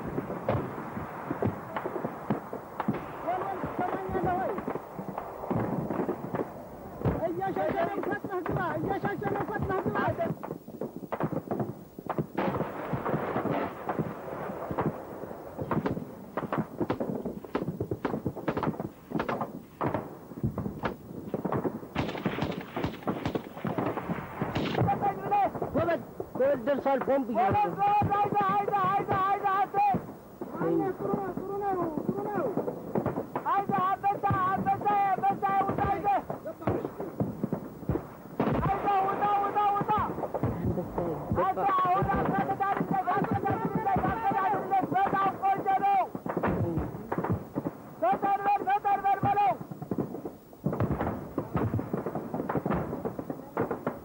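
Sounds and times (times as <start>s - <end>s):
gunfire cracks: 0.0s - 27.2s
small-arms gunfire: 11.1s - 34.8s.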